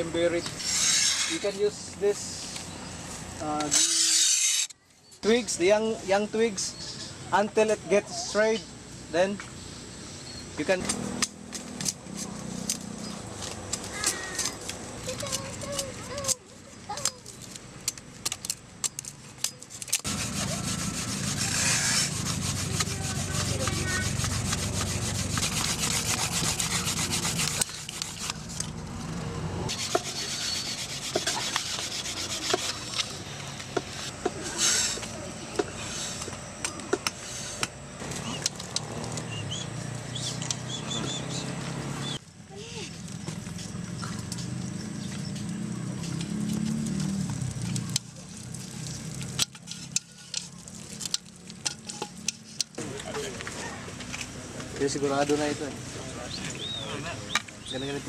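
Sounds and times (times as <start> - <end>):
bamboo rasping back and forth: 0.0 - 7.7, 10.7 - 39.5, 45.4 - 53.0.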